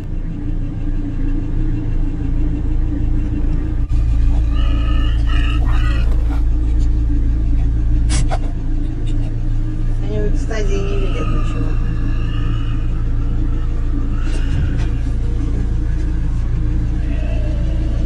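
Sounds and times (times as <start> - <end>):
vehicle engine idling: 0.0 - 18.0.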